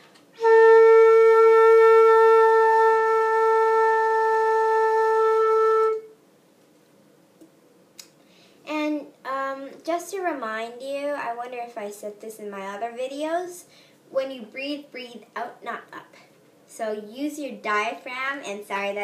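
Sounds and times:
flute holding long note: 0.4 - 6.2.

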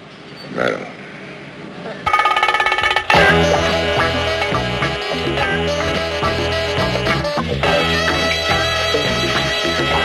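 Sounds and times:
rapid electric bell ringing: 2.1 - 4.6.

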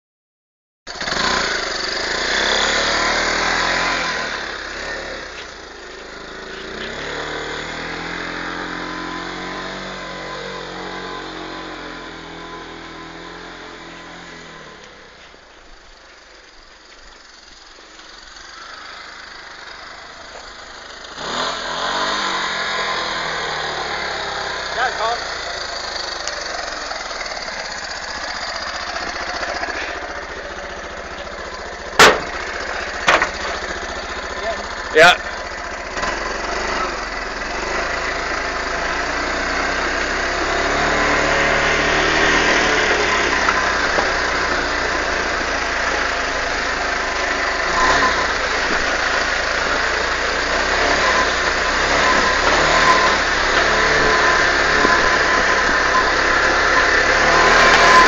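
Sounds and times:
atv engine running: 0.9 - 58.0
sharp knocks: 32.0 - 32.4, 33.0 - 33.4.

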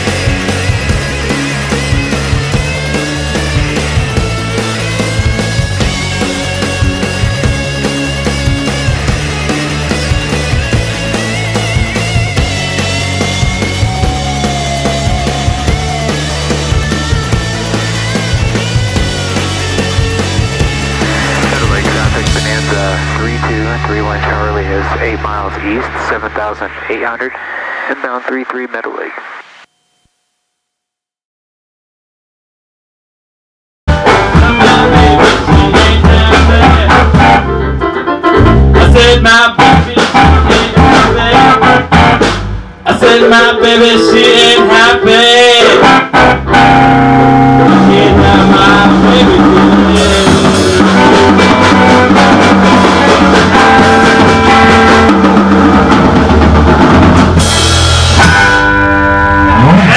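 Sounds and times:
rock band playing live: 0.0 - 25.5, 33.9 - 59.9
intercom hiss: 21.0 - 29.7
radio call voice over intercom: 21.2 - 29.6.

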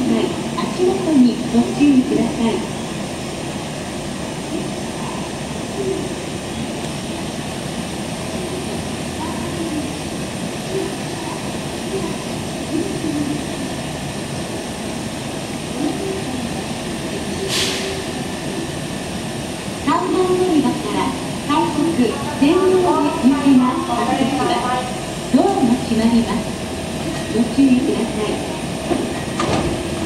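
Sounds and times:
faint voices: 8.1 - 28.8
short sharp hiss: 17.5 - 18.0.

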